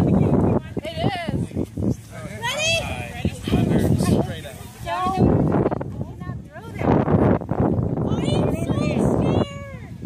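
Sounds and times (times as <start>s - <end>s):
noisy crowd: 0.0s - 10.0s.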